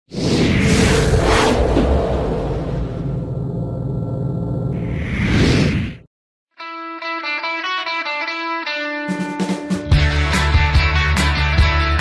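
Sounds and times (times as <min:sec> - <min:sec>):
airy whooshes: 0:00.1 - 0:04.0, 0:04.7 - 0:06.1
low rumble: 0:00.6 - 0:05.4.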